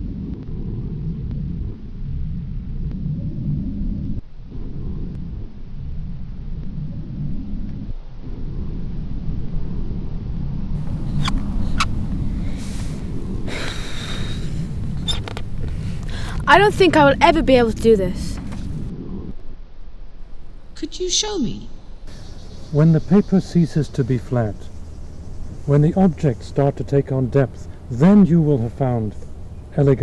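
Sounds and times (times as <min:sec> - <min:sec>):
wind buffeting microphone: 0:00.0 - 0:19.4, 0:22.1 - 0:30.0.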